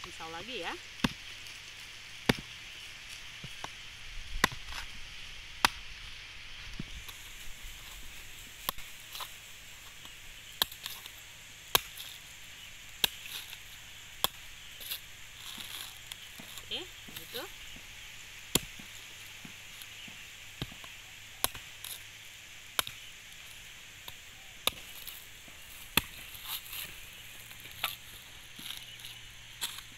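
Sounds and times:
knife chopping coconut husk: 0:01.0 - 0:01.3, 0:04.4 - 0:04.9, 0:05.6 - 0:05.8, 0:10.0 - 0:11.1, 0:11.7 - 0:12.3, 0:13.0 - 0:13.6, 0:14.2 - 0:22.1, 0:24.0 - 0:29.9.

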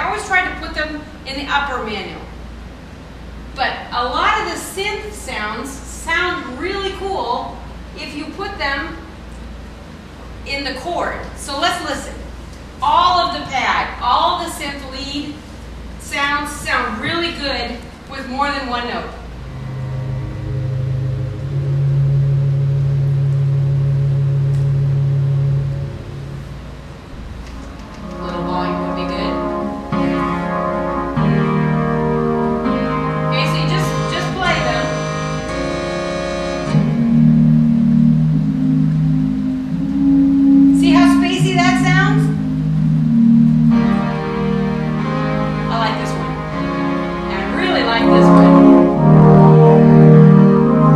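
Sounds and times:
electronic organ synth chords: 0:19.3 - 0:50.9.

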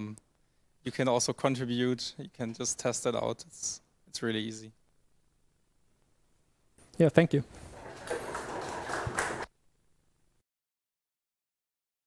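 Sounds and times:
audience applauding: 0:07.7 - 0:09.5.

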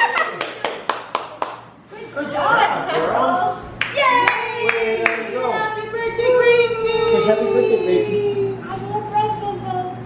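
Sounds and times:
sharp hand claps: 0:00.1 - 0:01.7, 0:03.8 - 0:05.3.

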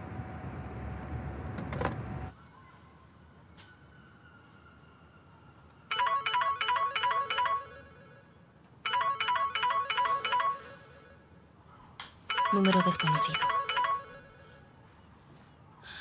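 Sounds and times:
phone ringtone melody: 0:05.9 - 0:11.3, 0:12.3 - 0:14.7.

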